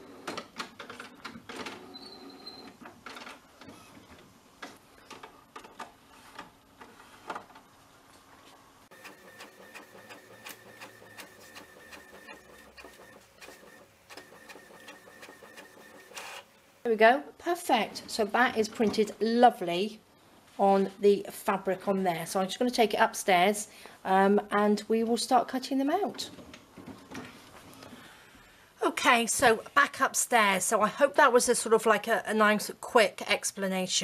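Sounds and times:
printer clicks and whirring: 8.9s - 16.5s
printer motor whine: 8.9s - 16.5s.

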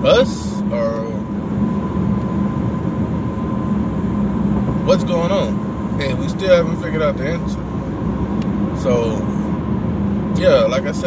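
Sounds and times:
faint steady whine: 0.0s - 11.0s
road and engine rumble in car: 0.0s - 11.0s.

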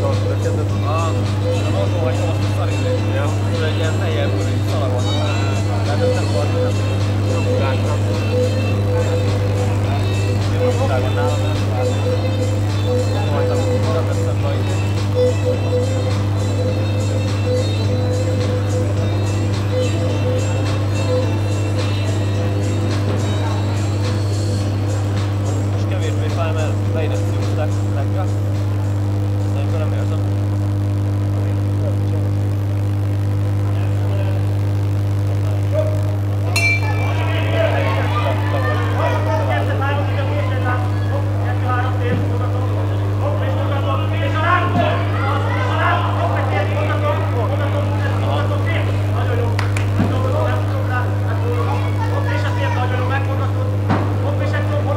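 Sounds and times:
faint background music: 0.0s - 54.9s
steady low hum: 0.0s - 54.9s
ring bell: 36.6s - 38.1s
spectators shouting: 36.6s - 39.7s, 44.6s - 47.4s.

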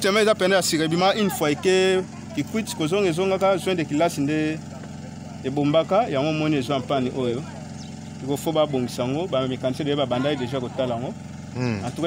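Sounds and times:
man speaking: 11.6s - 12.0s.

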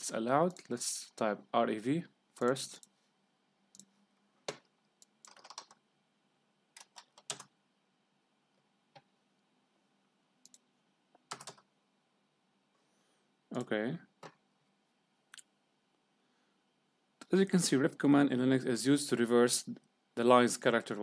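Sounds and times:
computer keyboard keystrokes: 4.5s - 5.8s, 6.8s - 7.5s, 11.3s - 11.7s
mouse clicks: 10.4s - 10.6s.

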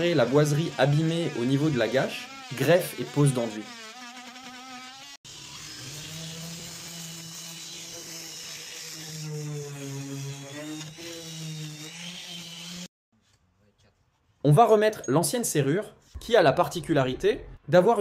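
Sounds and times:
electric sander humming: 0.0s - 12.9s
oscillating multi-tool cutting wood: 0.0s - 12.9s.

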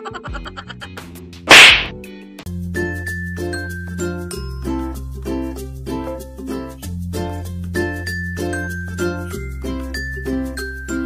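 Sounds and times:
comedy whip-crack sound effect: 1.5s - 2.0s.

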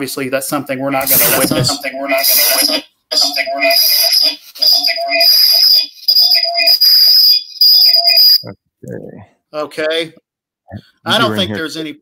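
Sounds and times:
high steady tone: 0.9s - 8.5s
voice fragment stuttering in a loop: 0.9s - 9.2s.

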